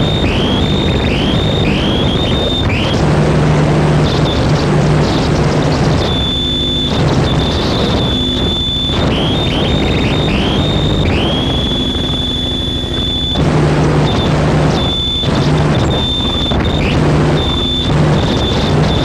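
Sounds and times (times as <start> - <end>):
low buzzing drone pulses: 0.0 - 19.0
wall of distorted noise: 0.0 - 19.0
piercing high tone swooping upward: 6.0 - 18.8.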